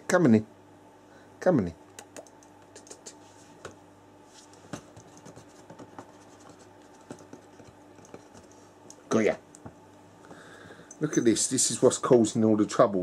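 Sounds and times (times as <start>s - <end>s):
low steady hum: 0.0s - 13.0s
faint irregular scratching: 4.2s - 8.7s.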